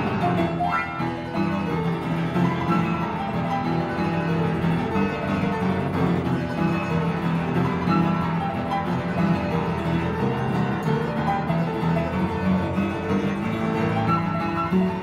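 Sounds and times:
solo upright piano: 0.0s - 15.0s.

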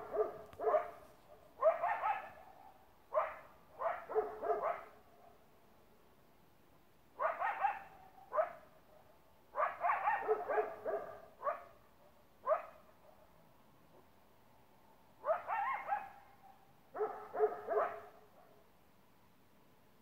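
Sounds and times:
dog barking: 0.0s - 1.0s, 1.6s - 5.0s, 7.2s - 11.8s, 12.4s - 13.3s, 15.2s - 18.6s.

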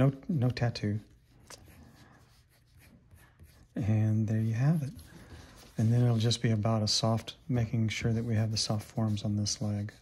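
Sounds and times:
pencil scratching on paper: 0.4s - 10.0s.

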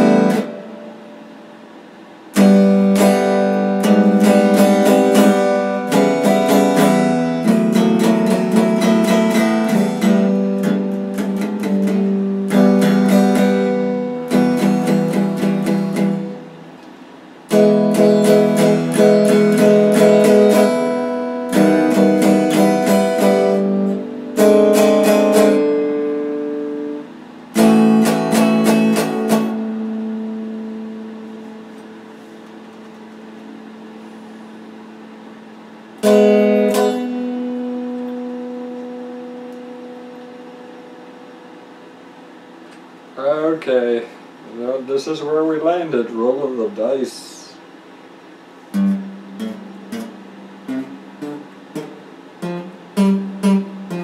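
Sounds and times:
electric guitar strummed chords: 0.0s - 44.4s, 46.6s - 54.0s.

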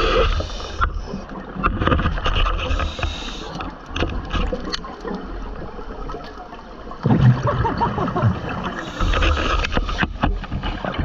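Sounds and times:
rush of underwater bubbles: 5.1s - 9.6s.

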